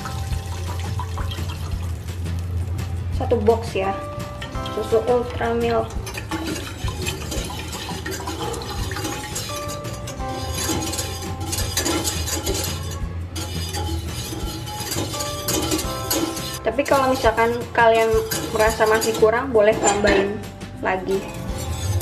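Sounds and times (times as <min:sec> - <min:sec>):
milk pouring into saucepan: 0:00.0 - 0:02.3, 0:05.8 - 0:12.9
background music with held notes: 0:00.0 - 0:22.0.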